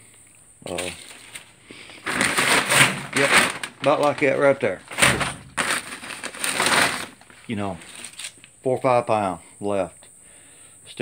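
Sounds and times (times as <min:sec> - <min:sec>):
plastic bag crinkling: 0:00.7 - 0:08.4.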